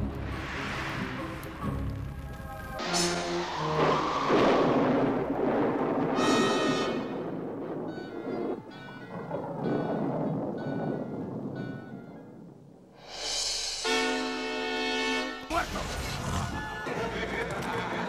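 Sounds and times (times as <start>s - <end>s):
dramatic orchestral music: 0.0s - 5.5s
loud rumbling rush: 0.0s - 12.1s, 12.8s - 14.6s
thunderclap-like crash: 2.8s - 14.2s.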